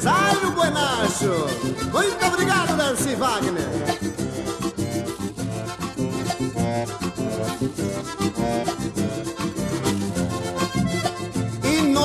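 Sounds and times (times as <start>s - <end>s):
accordion dance music: 0.0s - 12.0s.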